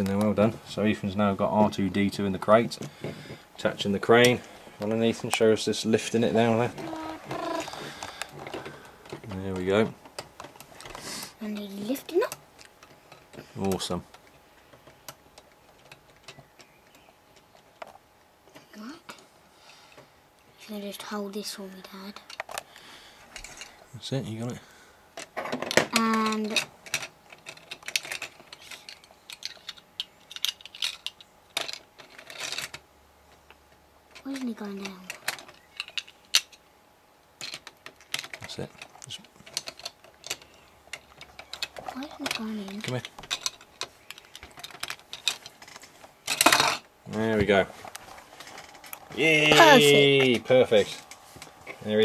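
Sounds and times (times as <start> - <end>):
plastic parts clicking: 25.2 - 36.6, 37.4 - 46.8.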